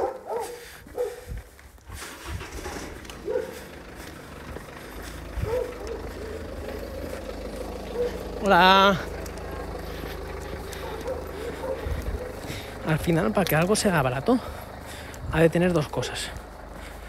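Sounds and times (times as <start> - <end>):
vehicle engine humming: 0.0 - 17.0.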